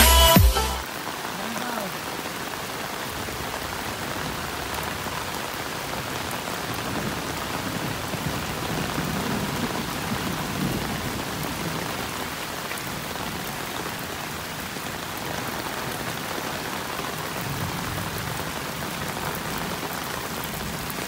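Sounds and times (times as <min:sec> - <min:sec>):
heavy rain on road: 0:00.8 - 0:21.0
runoff water flowing: 0:00.8 - 0:21.0.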